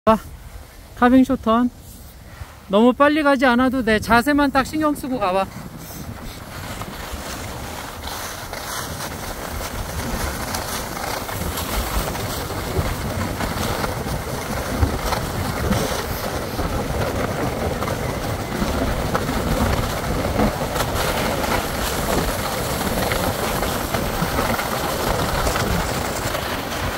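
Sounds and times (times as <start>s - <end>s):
skis scraping over snow: 0.4s - 26.9s
wind on microphone: 1.7s - 26.9s.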